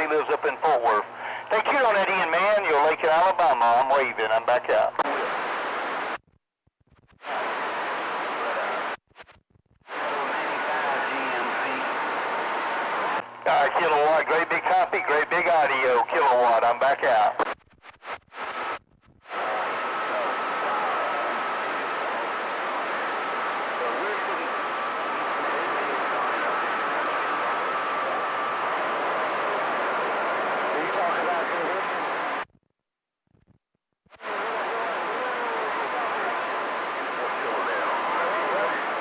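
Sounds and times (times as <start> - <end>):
radio static: 0.0 - 6.2, 6.9 - 32.5, 34.1 - 39.0
faint garbled voices: 9.9 - 17.4, 34.2 - 39.0.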